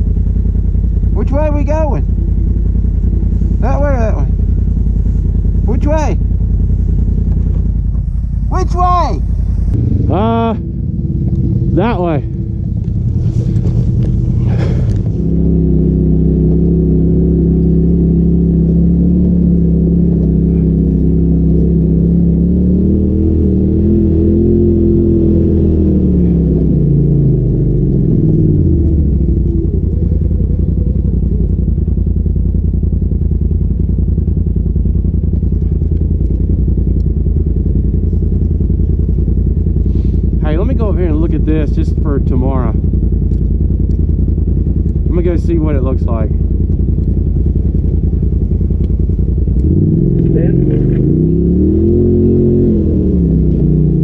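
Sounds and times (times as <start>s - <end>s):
off-road vehicle engine running: 0.0s - 54.0s.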